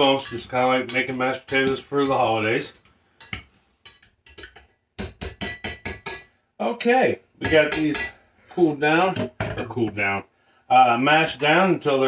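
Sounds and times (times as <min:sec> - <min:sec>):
utensils knocking against pot: 0:00.0 - 0:06.3, 0:07.4 - 0:08.2.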